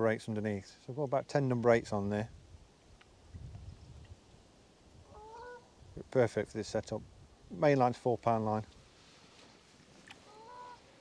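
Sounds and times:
distant bird call: 5.0s - 5.8s, 10.0s - 11.0s.

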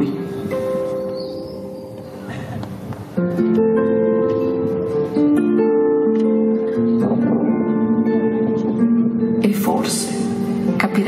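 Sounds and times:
plucked guitar notes: 0.0s - 11.0s.

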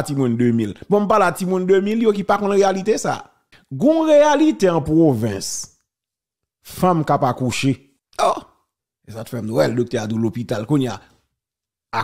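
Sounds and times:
man speaking: 0.0s - 5.8s, 6.6s - 11.1s.

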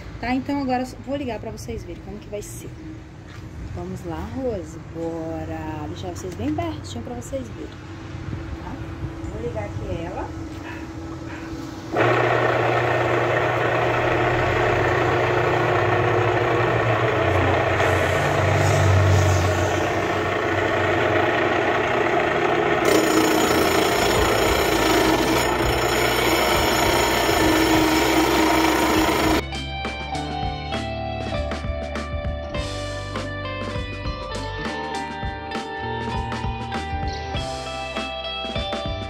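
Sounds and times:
electric motor spinning saw blade: 11.9s - 29.4s
music: 29.4s - 39.0s.

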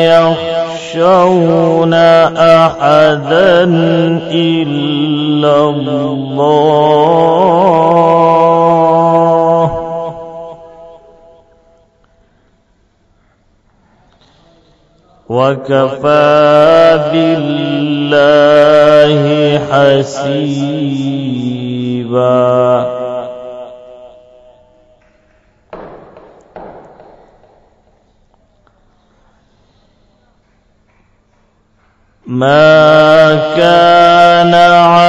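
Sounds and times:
man reciting a long note: 0.0s - 11.5s, 15.2s - 24.9s, 32.2s - 35.0s.

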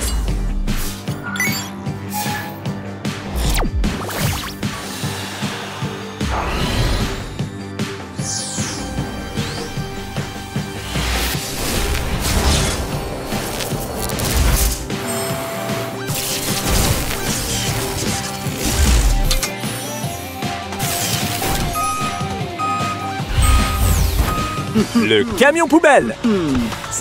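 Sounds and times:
loud energetic music: 0.0s - 27.0s
short electronic beeps: 21.7s - 24.8s.

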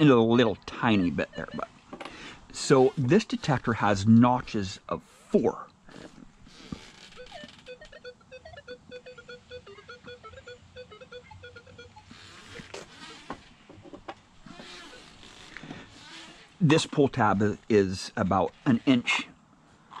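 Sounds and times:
metal detector choppy beeps: 0.7s - 1.7s, 7.1s - 13.2s.

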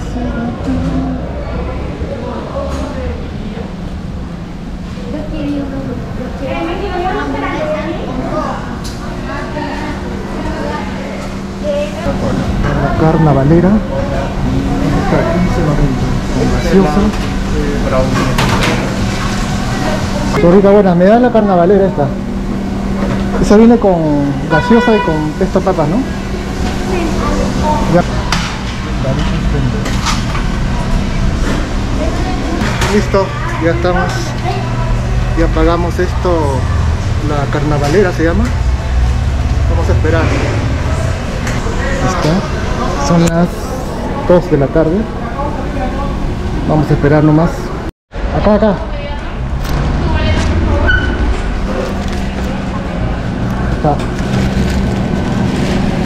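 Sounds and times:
low hum and rumble: 0.0s - 56.0s.

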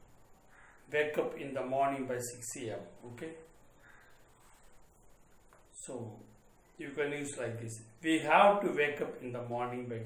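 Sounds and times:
faint animal call: 0.4s - 0.9s, 3.8s - 4.4s
man speaking: 0.9s - 3.6s, 5.7s - 10.0s.

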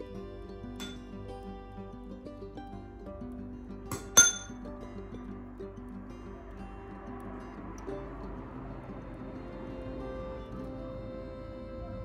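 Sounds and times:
background music: 0.0s - 12.0s
spoon clinking against ceramic bowl: 4.2s - 4.5s.

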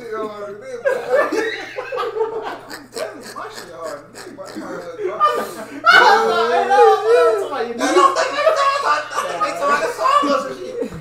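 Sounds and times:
men laughing: 0.0s - 11.0s
indistinct talk: 2.2s - 11.0s.

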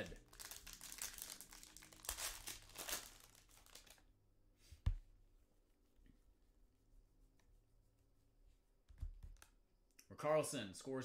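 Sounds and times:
foil wrapper crinkling and tearing: 0.0s - 4.0s.

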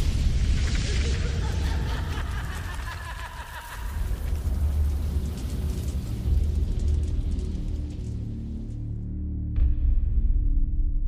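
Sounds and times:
rain-like hiss: 0.0s - 8.9s
deep rumble: 0.0s - 11.0s.

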